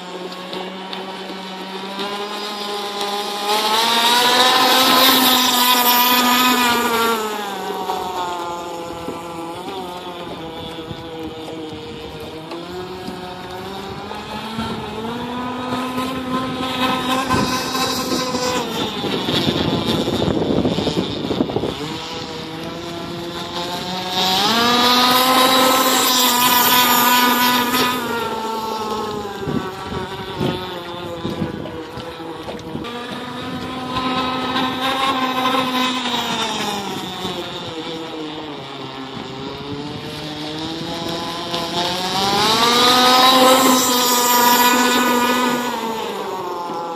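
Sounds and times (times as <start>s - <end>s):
electric motor whining: 0.0s - 46.9s.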